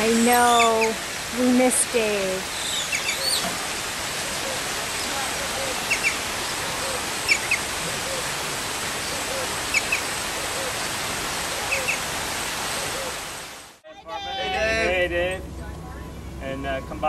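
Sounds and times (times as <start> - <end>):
water rushing over rocks: 0.0 - 13.8.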